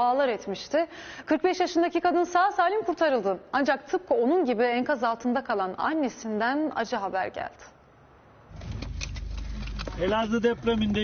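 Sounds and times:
low steady rumble: 8.5s - 11.0s.

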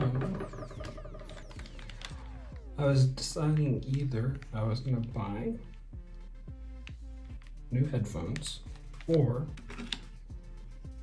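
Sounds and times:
headphones plastic clicking and rattling: 0.0s - 5.8s, 6.7s - 10.4s.

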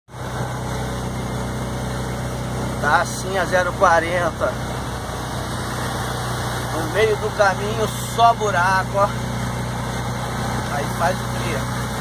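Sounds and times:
road noise on wet road: 0.1s - 12.0s
truck engine running: 0.1s - 12.0s.

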